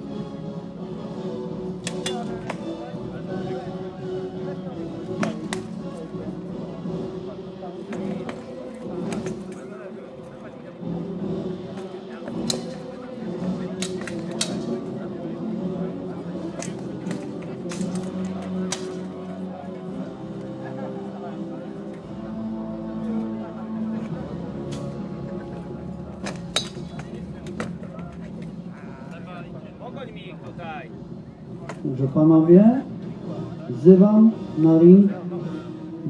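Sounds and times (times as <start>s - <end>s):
murmur of onlookers: 0.0s - 36.0s.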